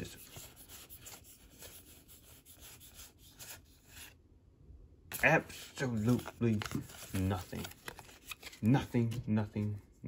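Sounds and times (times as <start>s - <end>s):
trading cards rubbing and sliding: 0.0s - 4.2s, 5.1s - 9.8s.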